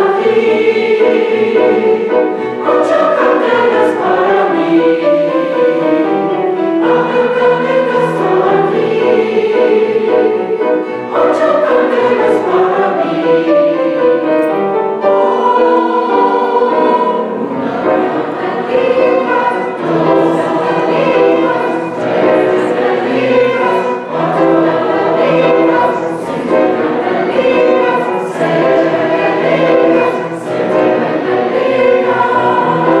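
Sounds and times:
mixed choir singing: 0.0 - 33.0
violin accompaniment: 0.0 - 33.0.

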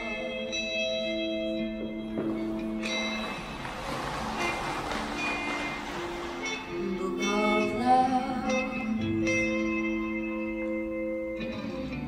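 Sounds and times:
woman singing into a microphone: 6.8 - 9.4.

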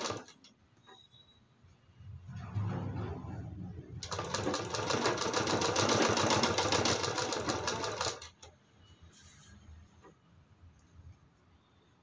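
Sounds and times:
sewing machine stitching: 0.0 - 0.5, 4.0 - 8.5.

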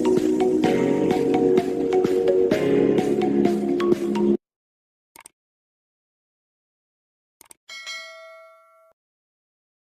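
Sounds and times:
notification bell chime: 7.7 - 9.0.

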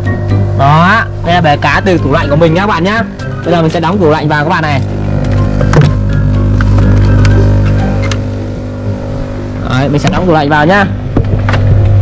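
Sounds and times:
aquarium air pump buzzing: 0.0 - 12.0.

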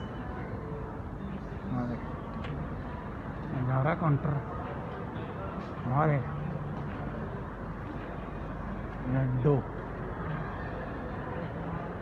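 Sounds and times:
airport terminal background noise: 0.0 - 12.0.

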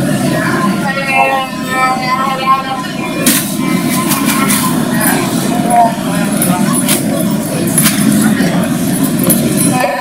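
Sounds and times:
indistinct crowd chatter: 0.0 - 10.0.

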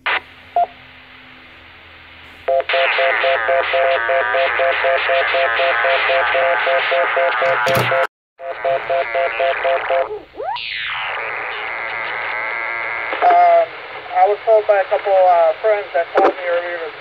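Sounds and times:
radio channel hiss: 0.0 - 0.7, 2.2 - 10.2, 10.9 - 17.0
radio burst: 2.4 - 17.0
voice over radio: 2.7 - 8.0, 8.6 - 10.2, 13.1 - 17.0.

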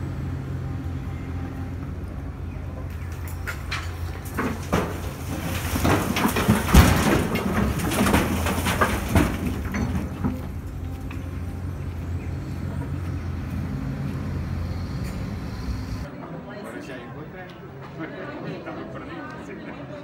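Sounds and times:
excavator engine drone: 0.0 - 16.1
masonry crashing and rubble falling: 3.0 - 11.7.

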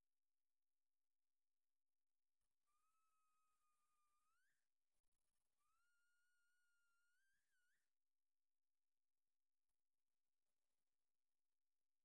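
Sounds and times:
faint whistle-like tones: 2.4 - 8.0.

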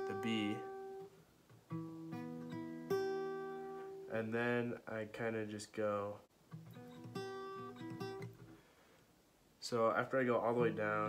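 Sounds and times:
fingerpicked acoustic guitar: 0.0 - 4.8, 6.5 - 8.7, 10.2 - 11.0.

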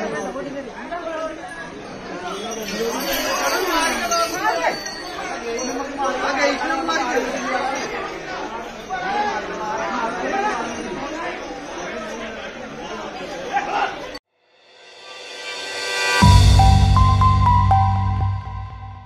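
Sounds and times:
people talking and shouting: 0.0 - 14.2.

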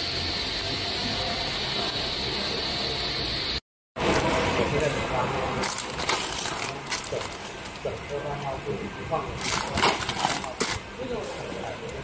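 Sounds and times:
plastic snack bags crinkling: 5.6 - 8.2, 9.4 - 10.8
plastic film crackles: 5.6 - 8.5, 9.3 - 10.9.

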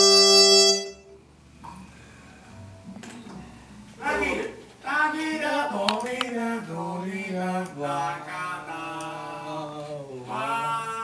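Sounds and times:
trumpet holding long note: 0.0 - 1.1.

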